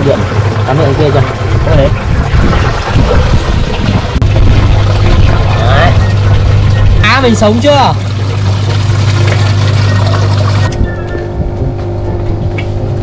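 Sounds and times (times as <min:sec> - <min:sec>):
water bubbling: 0:00.0 - 0:10.7
aquarium air pump humming: 0:00.0 - 0:13.0.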